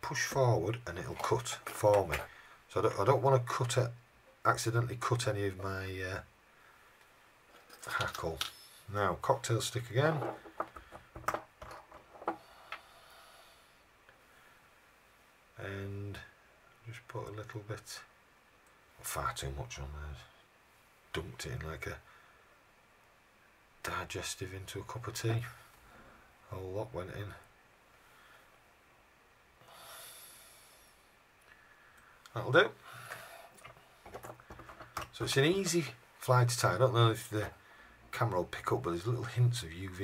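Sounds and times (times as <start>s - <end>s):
soft breath through nose: 12.4s - 14.8s, 29.6s - 32.2s, 32.8s - 34.0s.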